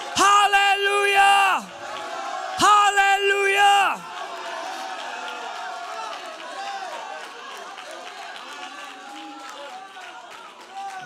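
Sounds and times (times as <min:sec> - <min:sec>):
congregation calling out: 0:00.0 - 0:04.2.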